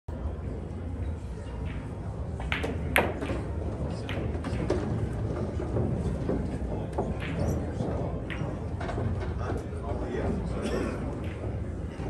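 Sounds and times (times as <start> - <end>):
low hall hum: 0.1 - 12.0
pool balls clacking: 1.7 - 9.4.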